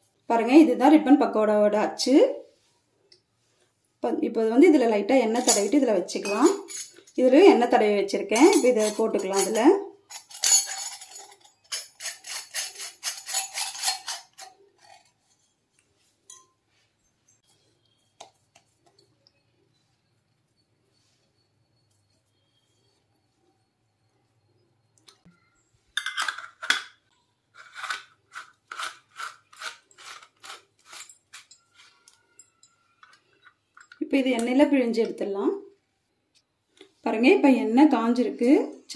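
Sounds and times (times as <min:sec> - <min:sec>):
metal clicks and clinks: 0:08.4 - 0:15.1, 0:29.5 - 0:34.6.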